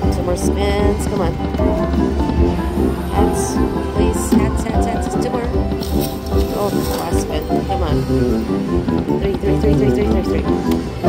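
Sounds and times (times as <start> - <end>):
background voices: 0.0 - 8.5
slot machine bonus music: 1.1 - 11.0.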